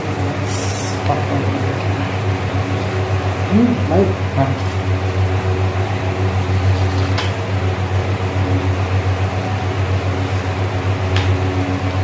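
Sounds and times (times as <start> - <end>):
fan motor humming: 0.0 - 12.0.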